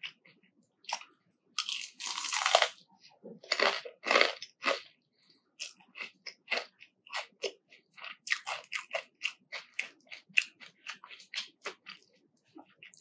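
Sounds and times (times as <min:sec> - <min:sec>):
crunchy chewing: 0:00.0 - 0:02.8, 0:03.4 - 0:05.0, 0:05.6 - 0:13.0.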